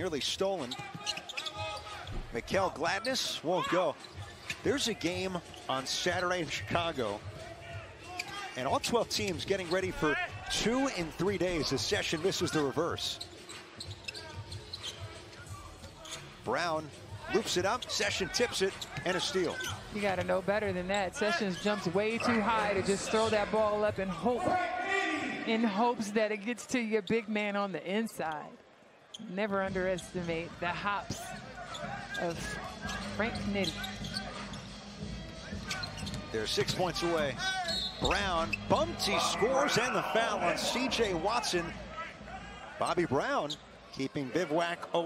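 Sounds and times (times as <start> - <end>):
faint arena music: 0.0 - 28.4, 29.2 - 45.0
arena crowd murmur: 13.6 - 45.0.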